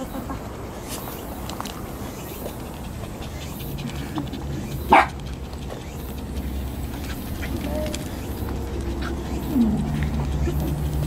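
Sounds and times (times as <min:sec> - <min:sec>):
faint voices: 0:00.0 - 0:11.0
low steady rumble: 0:01.8 - 0:11.0
dog barking: 0:04.7 - 0:05.2.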